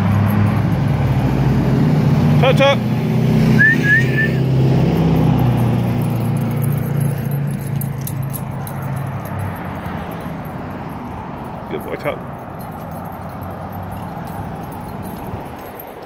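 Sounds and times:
vehicle engine running: 0.0 - 16.0.

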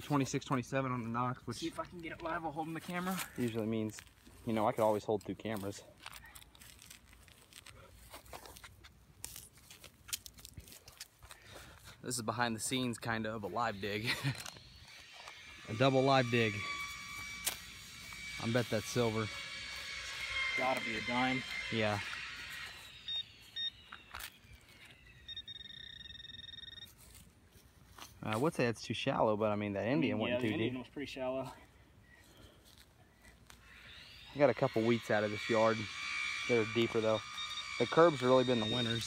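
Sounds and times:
metal detector beeping: 12.8 - 27.3, 32.2 - 39.0.

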